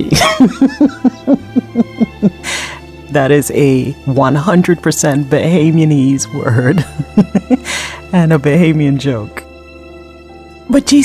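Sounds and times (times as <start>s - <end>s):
woman laughing: 0.0s - 2.7s, 6.7s - 7.9s
faint background music: 0.0s - 11.0s
sharp intake of breath: 2.4s - 2.9s, 7.6s - 8.1s.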